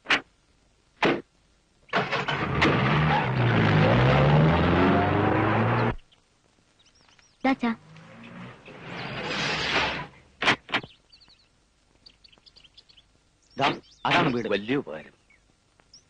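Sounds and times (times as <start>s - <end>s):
car engine revving: 2.0s - 6.0s, 7.7s - 10.2s.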